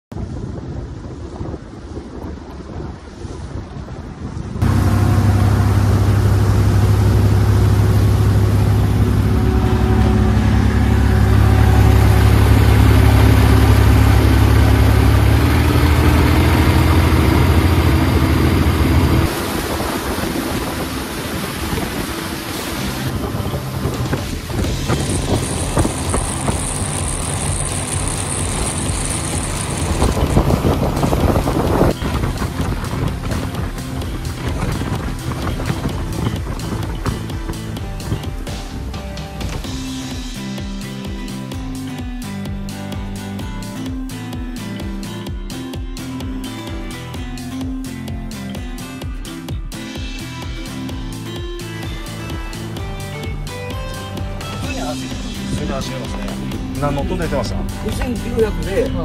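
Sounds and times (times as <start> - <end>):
wind on microphone: 0.1 - 39.0
hull spray rushing: 4.5 - 40.1
boat diesel engine droning: 4.5 - 40.3
thin high whine: 4.6 - 15.3, 18.0 - 31.9.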